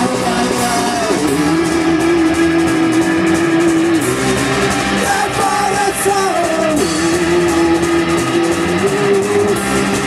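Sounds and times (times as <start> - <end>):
punk rock band playing: 0.0 - 10.0.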